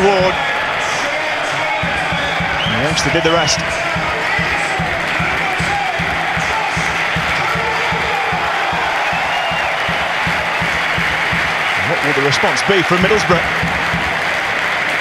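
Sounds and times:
stadium crowd cheering and chanting: 0.0s - 15.0s.

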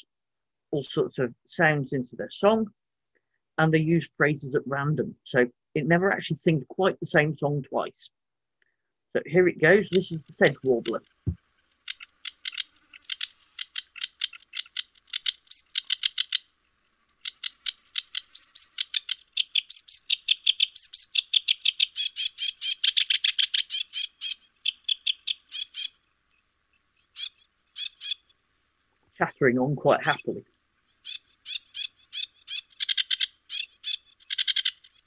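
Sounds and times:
warbler singing: 9.3s - 28.4s, 29.2s - 35.0s.

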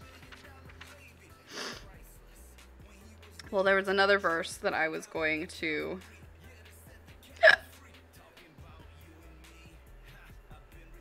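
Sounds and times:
faint background music: 0.0s - 11.0s
woman's hiccup-like vocal sound: 7.4s - 7.7s.

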